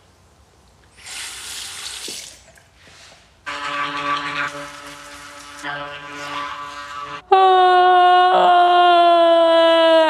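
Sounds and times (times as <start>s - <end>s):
tap water running into a sink: 1.1s - 2.5s.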